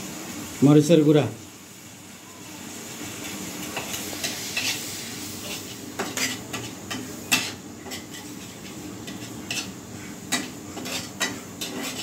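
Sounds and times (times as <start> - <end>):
food sizzling in oil: 0.0 - 12.0
spoon scraping wok: 3.6 - 12.0.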